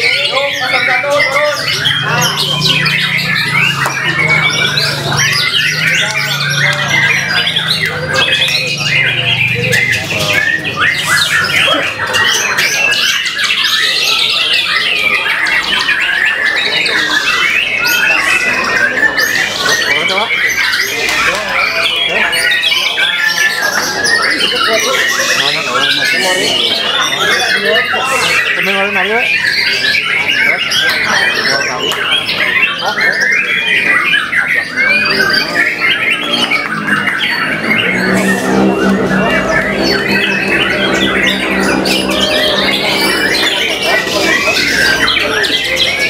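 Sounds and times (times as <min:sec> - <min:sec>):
bird singing whistles and trills: 0:00.0 - 0:46.0
steady low drone: 0:35.1 - 0:46.0.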